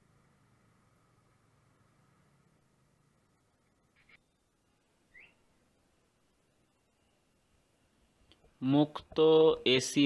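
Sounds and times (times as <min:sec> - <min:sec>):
faint high chirps: 0:03.4 - 0:05.6, 0:06.4 - 0:08.4.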